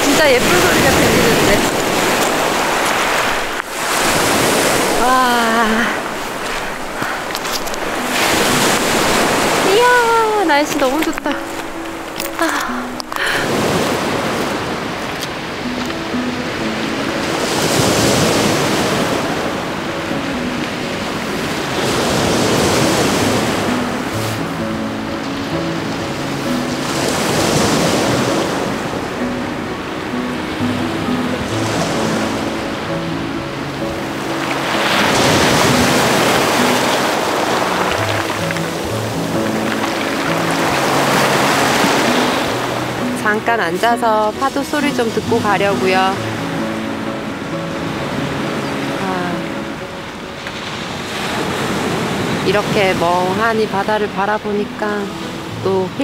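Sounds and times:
soft background music: 0.0 - 56.0
waves washing over stones: 0.0 - 56.0.

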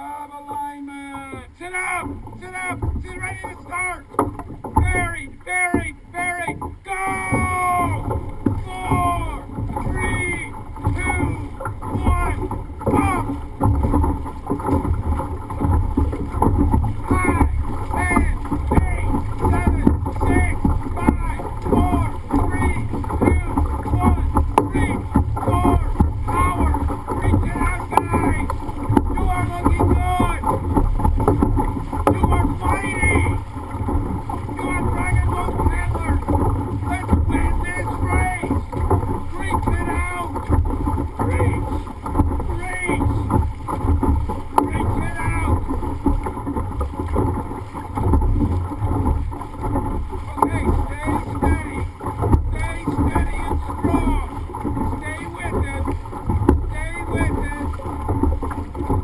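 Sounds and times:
voices calling out: 0.0 - 4.2, 4.8 - 13.4, 17.0 - 30.6, 32.0 - 33.5, 34.2 - 41.8, 42.4 - 43.3, 44.6 - 45.7, 50.2 - 56.0, 56.7 - 58.0
paddles splashing through water: 0.0 - 59.0.

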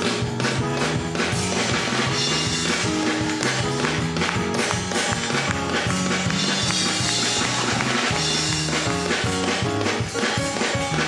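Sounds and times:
bass line: 0.0 - 11.0
church band playing: 0.0 - 11.0
drum kit beat: 0.0 - 11.0.

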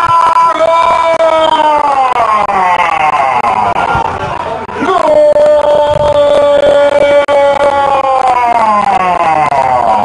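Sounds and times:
commentator shouting: 0.0 - 10.0.

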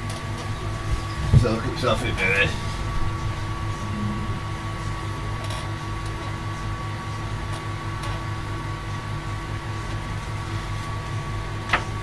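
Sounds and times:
machine hum with high tone: 0.0 - 12.0.

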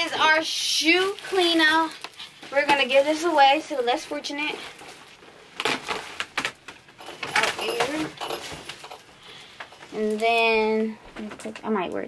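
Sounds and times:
plastic trash bag rustling: 0.0 - 10.7.

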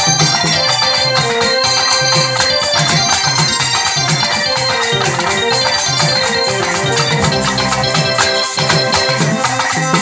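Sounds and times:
electronic keyboard melody: 0.0 - 10.0
hand percussion beat: 0.0 - 10.0.

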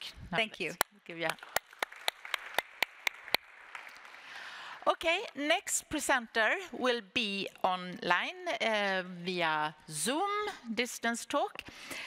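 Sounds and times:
close sharp hand clapping: 0.8 - 4.5
audience applauding: 1.4 - 4.7.

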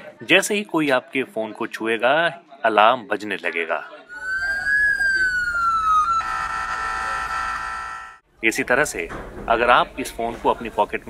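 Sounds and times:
phone alarm siren: 4.1 - 8.2.

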